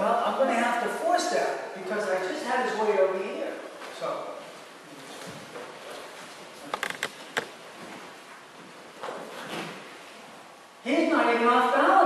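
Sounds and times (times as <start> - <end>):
faint room noise: 0.0 - 12.0
creaks and knocks on floor: 6.6 - 8.0.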